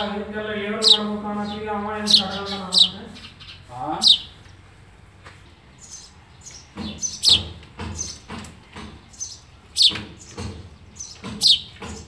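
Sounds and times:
sparrow chirping: 0:00.0 - 0:12.0.

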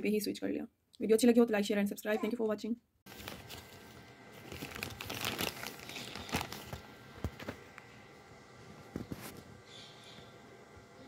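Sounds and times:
plastic wrapping crinkling: 0:03.1 - 0:07.9.

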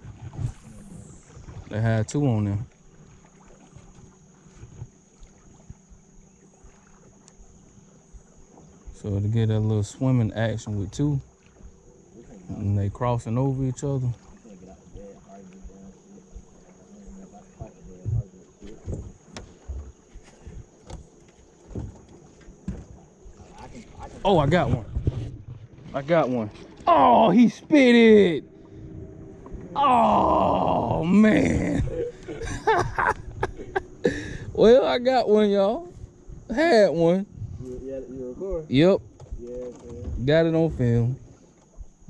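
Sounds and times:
steady low hum: 0:00.0 - 0:42.0
thin high whine: 0:00.2 - 0:02.6
water knocking against boat hull: 0:17.6 - 0:25.9.

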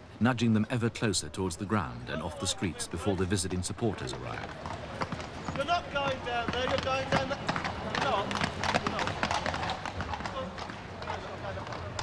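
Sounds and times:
hooves clip-clopping on paving: 0:03.0 - 0:12.0.

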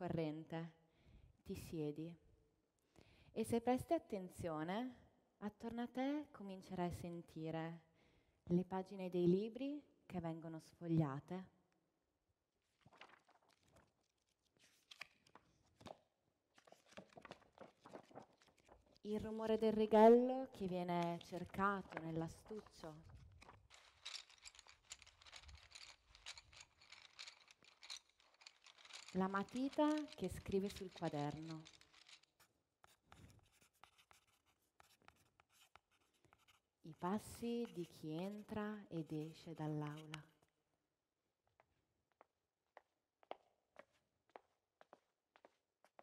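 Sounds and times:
paper pages turning: 0:12.8 - 0:19.5, 0:20.9 - 0:32.3
pencil scratching on paper: 0:32.8 - 0:40.1.

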